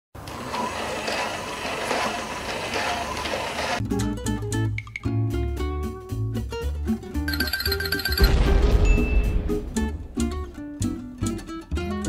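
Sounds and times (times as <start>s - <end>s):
music: 3.1s - 12.0s.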